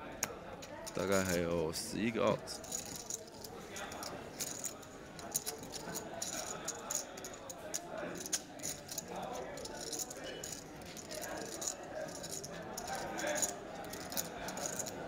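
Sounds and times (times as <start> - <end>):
faint voices: 0.0 - 15.0
poker chips clicking: 2.7 - 15.0.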